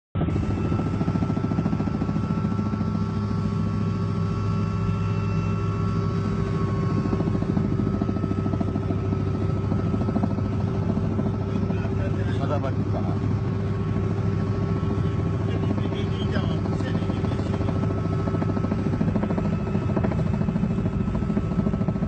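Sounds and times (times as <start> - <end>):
helicopter engine and rotor drone: 0.2 - 22.0.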